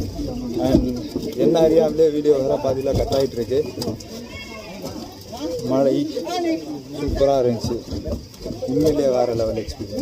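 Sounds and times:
man talking in a low voice: 6.9s - 10.0s.

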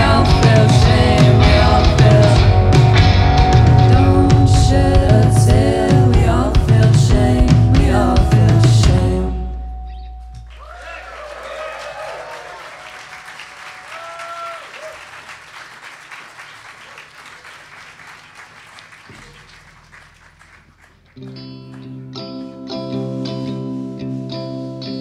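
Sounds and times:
electric guitars playing: 0.0s - 10.7s, 21.2s - 25.0s
audience applauding and cheering: 10.4s - 22.0s.

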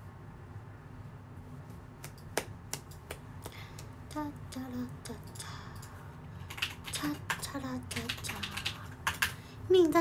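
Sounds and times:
woman speaking: 9.7s - 10.0s.

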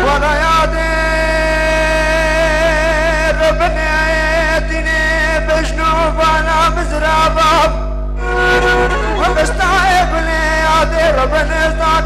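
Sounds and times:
man singing a long note: 0.0s - 12.0s
low drone: 8.2s - 12.0s.

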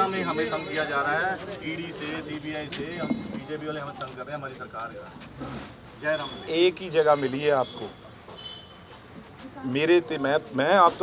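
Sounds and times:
people talking: 0.0s - 5.1s.

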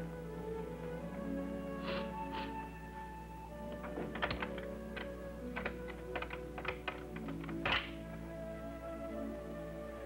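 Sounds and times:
soft background music: 0.0s - 10.0s
door latch clicks and rattles: 3.7s - 8.1s
door thunk: 3.8s - 4.7s.

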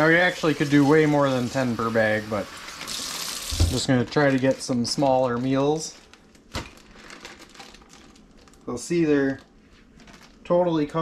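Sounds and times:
plastic bag crinkling: 2.7s - 11.0s.

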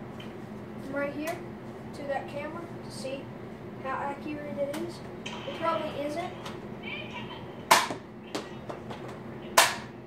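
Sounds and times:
toy blaster sharp snap: 9.6s - 9.9s.

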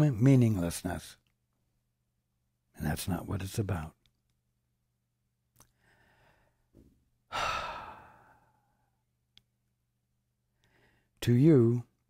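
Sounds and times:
man breathing in softly: 5.7s - 6.7s, 7.3s - 8.8s, 10.6s - 11.2s
man sighing loudly: 7.3s - 8.6s.

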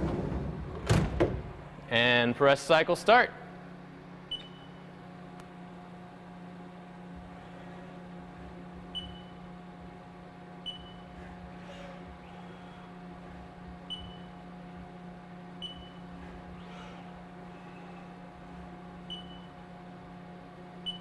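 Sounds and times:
machine hum: 0.0s - 21.0s.

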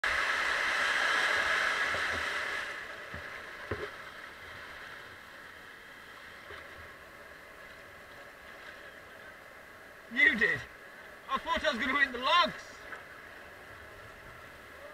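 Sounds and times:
water rushing over weir: 0.0s - 14.9s.

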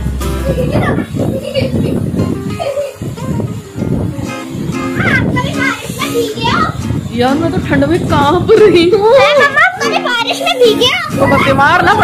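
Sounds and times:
heavy rain hissing: 0.0s - 12.0s
children shouting and squealing: 0.2s - 7.1s, 8.6s - 12.0s.

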